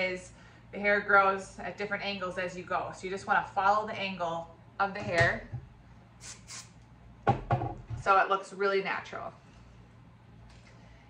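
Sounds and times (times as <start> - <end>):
aerosol spray hissing: 6.2 - 6.8.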